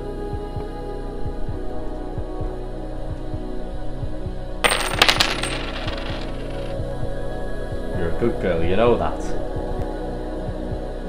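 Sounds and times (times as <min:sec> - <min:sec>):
coins clattering on hard surface: 0:04.6 - 0:06.8.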